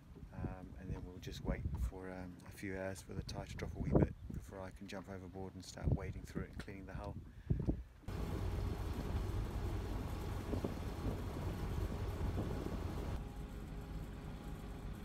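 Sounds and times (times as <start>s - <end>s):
broad rushing noise: 8.1s - 13.2s
boat engine low hum: 8.1s - 15.0s.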